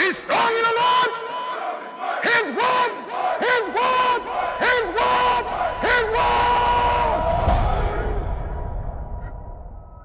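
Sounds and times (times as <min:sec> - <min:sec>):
voices calling in unison: 0:00.0 - 0:08.1
low rumble: 0:06.8 - 0:10.0.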